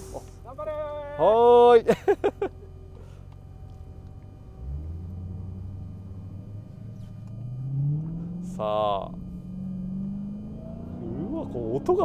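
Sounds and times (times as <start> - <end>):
car engine pulling away: 2.3 - 12.0.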